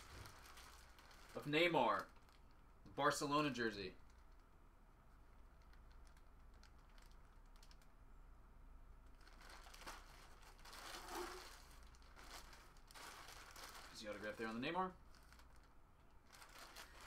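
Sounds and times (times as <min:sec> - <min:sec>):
plastic packaging crinkling: 0:00.0 - 0:04.5, 0:05.4 - 0:08.0, 0:09.0 - 0:17.0
low steady hum: 0:00.0 - 0:17.0.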